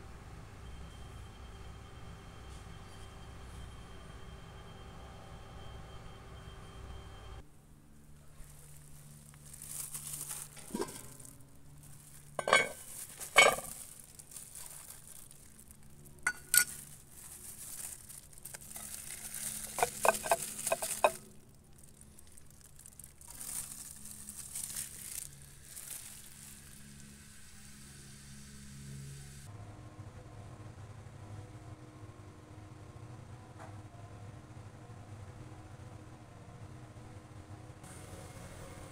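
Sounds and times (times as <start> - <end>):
plastic glove rustling: 8.2 - 27.1
cast-iron pots knocking: 10.6 - 11.2, 12.4 - 13.8, 16.3 - 16.7, 19.6 - 21.2
clinks: 12.3 - 14.1, 16.2 - 17.0, 18.5 - 21.4.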